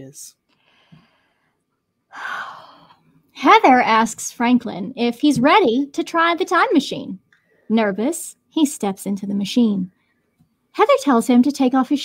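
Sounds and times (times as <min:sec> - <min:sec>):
woman breathing: 0:00.5 - 0:03.2.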